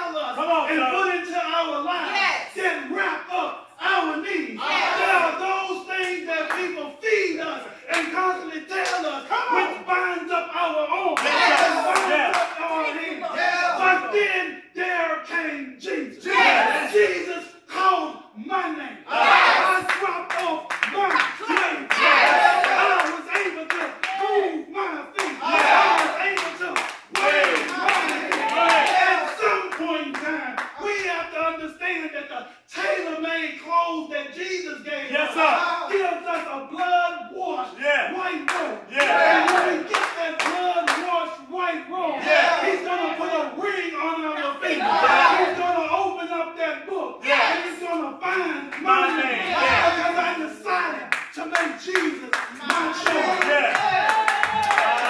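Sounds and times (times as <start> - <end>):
hand clapping steady beat: 7.9 - 9.1, 11.2 - 12.7, 19.2 - 24.4, 25.1 - 31.1, 38.4 - 41.1, 51.1 - 55.0.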